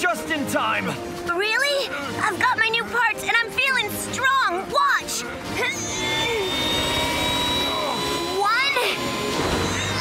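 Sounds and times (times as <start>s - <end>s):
background music: 0.0s - 10.0s
tail fan whine with rushing air: 5.9s - 10.0s.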